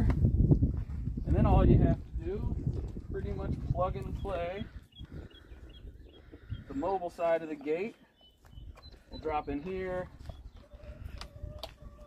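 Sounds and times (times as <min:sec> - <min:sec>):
hen calling: 0:04.2 - 0:12.0.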